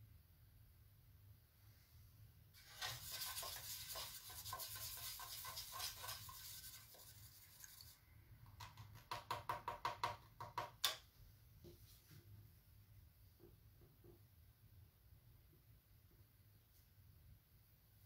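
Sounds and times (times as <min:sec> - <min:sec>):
paintbrush scrubbing: 0:02.6 - 0:08.0.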